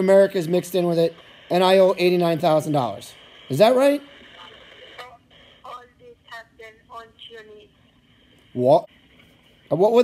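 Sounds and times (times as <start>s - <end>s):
phone line hiss: 0.0s - 5.9s.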